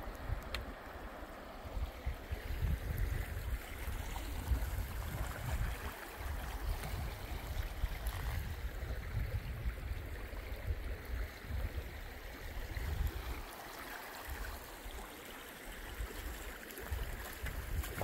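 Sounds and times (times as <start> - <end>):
creek rushing over rocks: 0.0 - 18.0.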